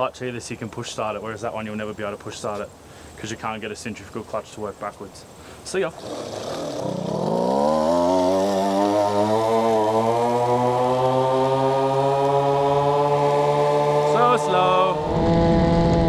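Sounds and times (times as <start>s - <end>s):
scooter two-stroke engine revving: 6.0s - 16.0s.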